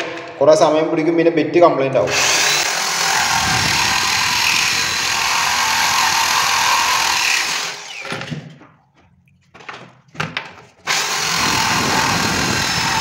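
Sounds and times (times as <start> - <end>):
drill grinding through stone: 2.1 - 8.2, 10.9 - 13.0.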